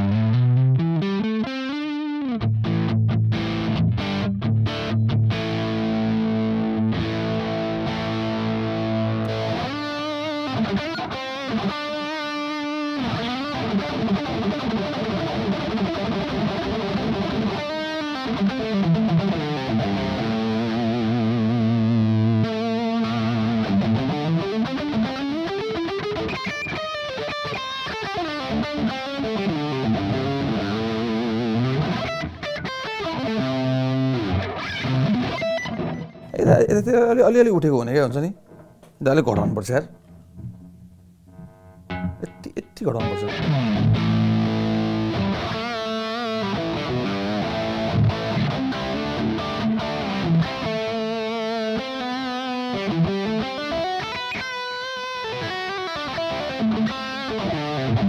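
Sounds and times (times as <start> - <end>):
electric guitar through amp: 0.0 - 36.4, 38.4 - 58.0.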